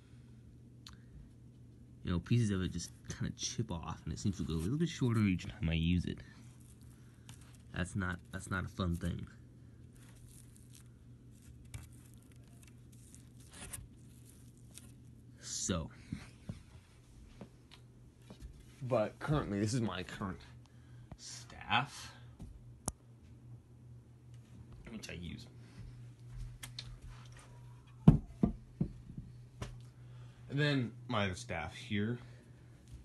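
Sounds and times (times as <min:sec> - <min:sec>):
steady low hum: 0:00.0 - 0:33.0
faint handling rustles: 0:04.2 - 0:20.6.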